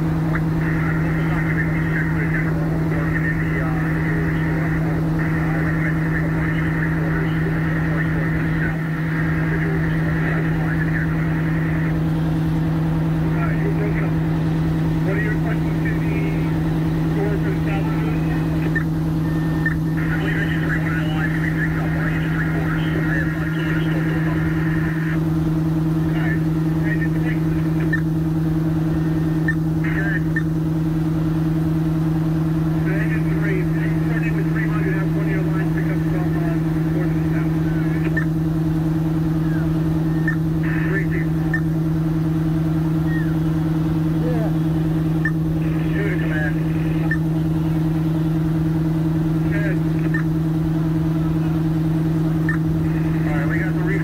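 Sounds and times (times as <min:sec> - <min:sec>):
fire truck engines droning: 0:00.0 - 0:54.0
faint voices: 0:00.2 - 0:30.6, 0:32.6 - 0:54.0.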